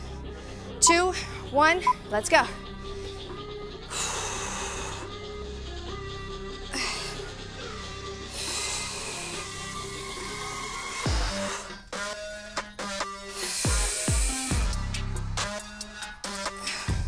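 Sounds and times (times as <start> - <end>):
electronic dance music: 0.8 - 2.5.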